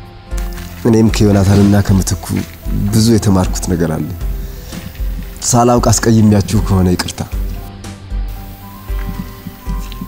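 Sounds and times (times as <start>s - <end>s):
soft music score: 0.0s - 10.0s
man speaking in low voice: 0.8s - 4.2s, 5.4s - 7.4s.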